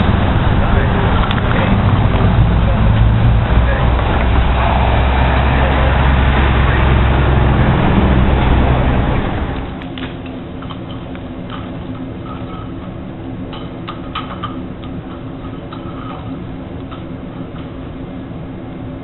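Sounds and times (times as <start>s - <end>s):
street traffic rumble: 0.0s - 19.0s.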